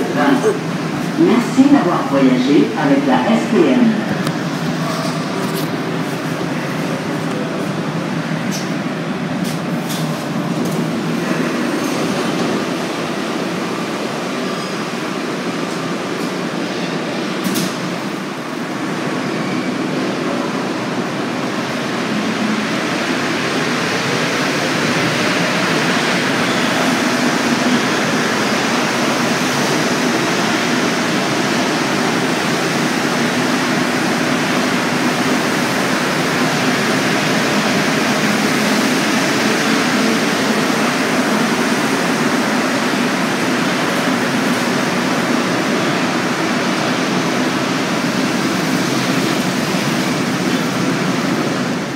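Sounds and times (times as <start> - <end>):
metro train running noise: 0.0 - 51.9.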